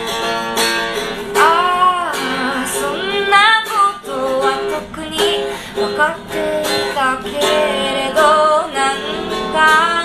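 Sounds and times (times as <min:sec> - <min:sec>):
guitar chords: 0:00.0 - 0:10.0
woman singing: 0:01.3 - 0:10.0.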